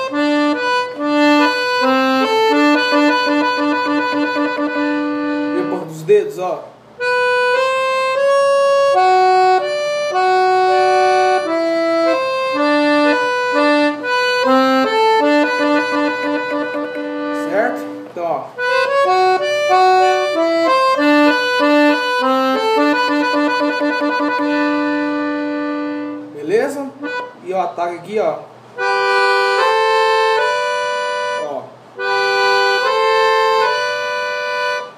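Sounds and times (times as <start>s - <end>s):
accordion melody: 0.0s - 34.9s.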